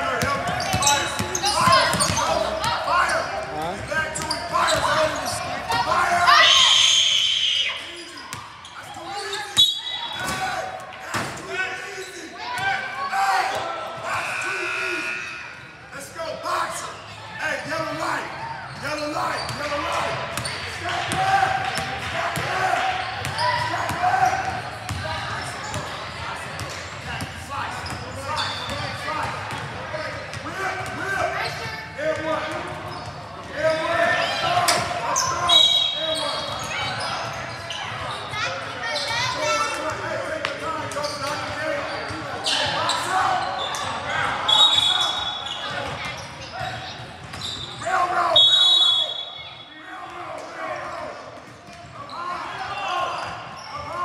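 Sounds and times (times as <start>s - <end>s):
people shouting and talking: 0.0s - 54.0s.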